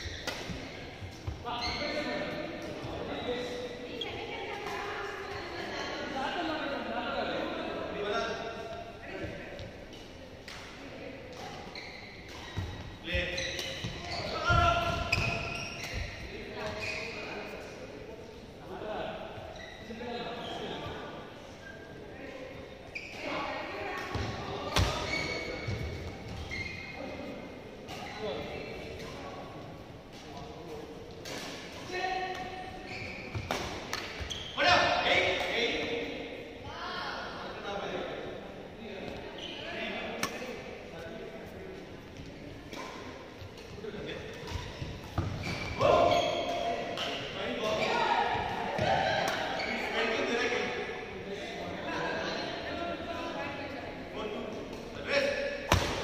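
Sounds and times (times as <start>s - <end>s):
rackets hitting shuttlecock: 33.3s - 34.3s, 40.2s - 40.6s, 48.7s - 49.6s.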